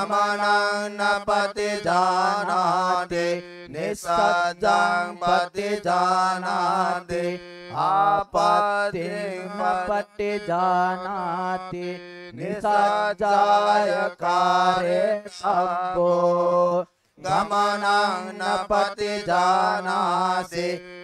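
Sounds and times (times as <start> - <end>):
man chanting through a microphone: 0.0 - 21.0.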